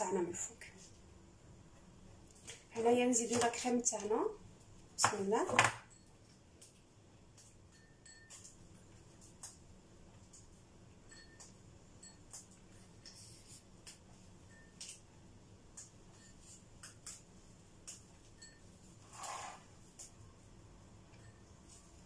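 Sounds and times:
spoon scraping: 19.0s - 19.8s.

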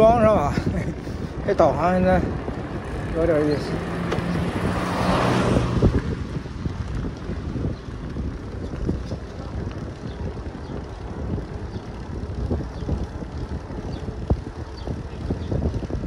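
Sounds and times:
bicycle tyre rumble on pavement: 0.0s - 16.0s
wind buffeting microphone: 0.0s - 16.0s.

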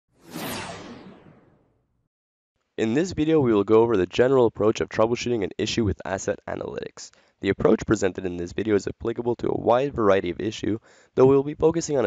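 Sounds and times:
whoosh sound effect: 0.1s - 1.7s.

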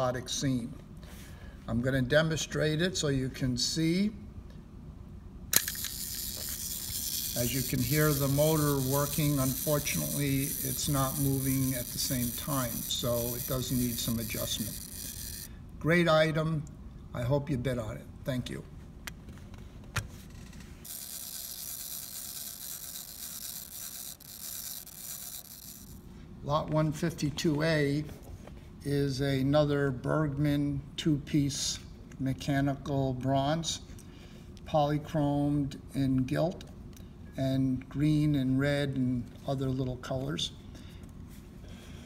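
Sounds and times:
small motor whirring: 5.6s - 15.6s, 20.8s - 26.1s.

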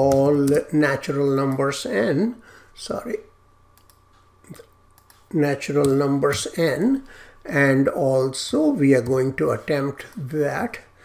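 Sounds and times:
computer mouse clicks: 3.8s - 6.0s.

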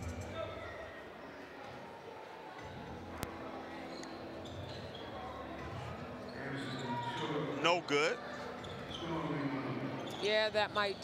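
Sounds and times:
gym hall background: 0.0s - 11.0s
sneakers squeaking on court: 4.0s - 7.3s, 8.5s - 9.2s.

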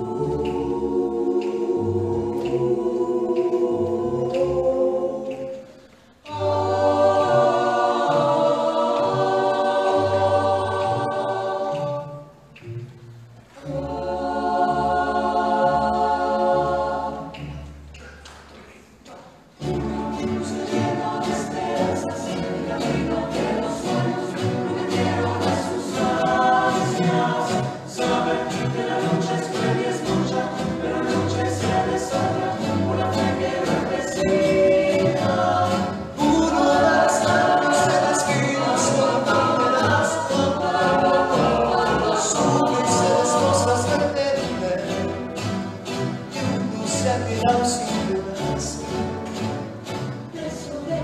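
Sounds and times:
chorus singing: 0.0s - 18.0s, 19.3s - 51.0s
double bass: 6.4s - 18.5s, 19.5s - 51.0s
strummed guitars: 19.6s - 51.0s.

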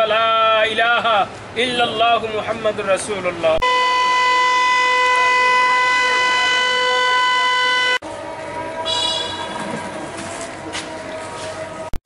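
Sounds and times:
siren steady pitch: 3.6s - 12.0s.

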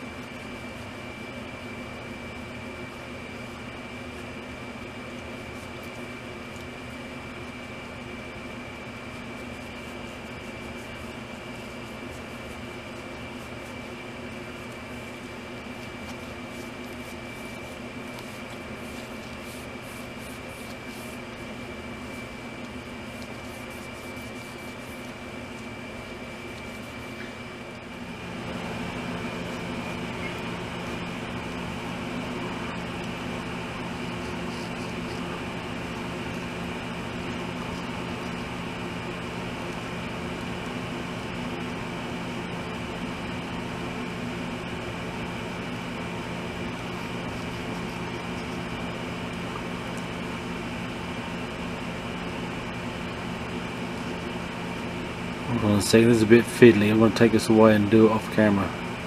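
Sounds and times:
mechanical hum: 0.0s - 59.0s.

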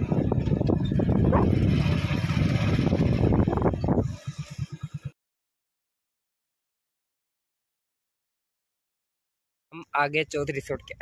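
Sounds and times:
road noise: 0.0s - 5.1s
motorcycle engine rumble: 0.0s - 5.2s.

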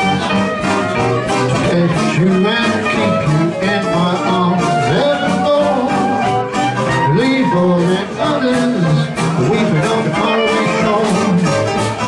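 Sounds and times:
clarinet: 0.0s - 12.0s
drums: 0.0s - 12.0s
guitar: 0.0s - 12.0s
piano: 0.0s - 12.0s
string bass: 0.0s - 12.0s
trombone: 0.0s - 12.0s.

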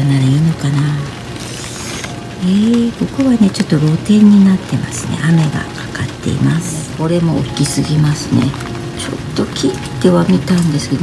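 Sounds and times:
rain hiss: 0.0s - 11.0s.

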